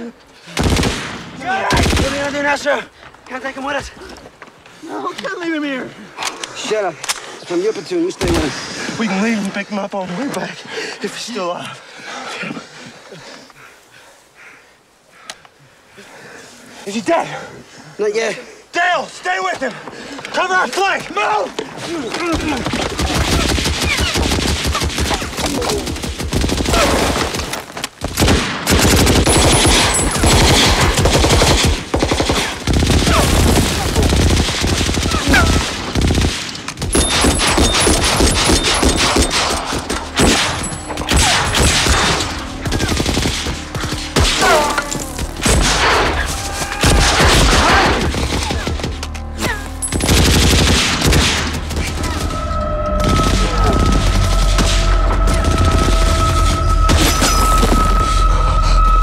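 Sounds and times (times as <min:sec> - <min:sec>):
machine-gun and rifle fire: 0:00.6 - 0:02.4, 0:22.4 - 0:44.5, 0:49.8 - 0:52.4.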